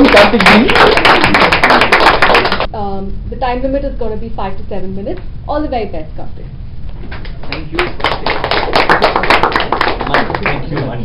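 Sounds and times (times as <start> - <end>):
people clapping: 0.0 - 2.7, 7.1 - 11.0.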